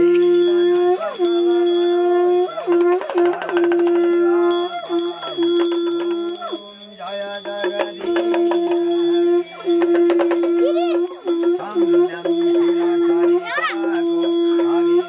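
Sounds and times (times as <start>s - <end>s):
small bell ringing: 0.0s - 15.0s.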